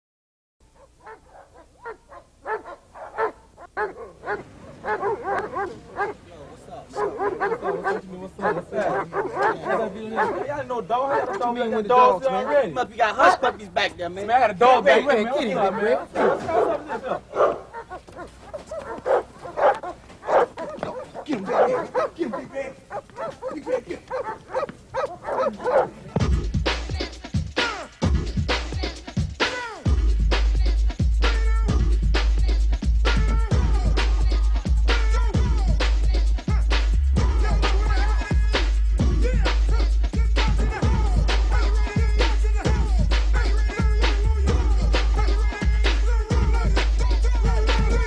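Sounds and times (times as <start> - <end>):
dogs barking: 0.6 - 14.0, 14.8 - 26.3.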